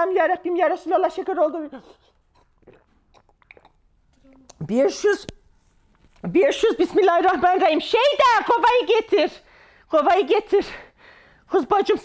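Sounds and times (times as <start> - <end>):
person sipping a drink: 1.8 - 4.6
mouth clicks and smacks: 1.9 - 5.4.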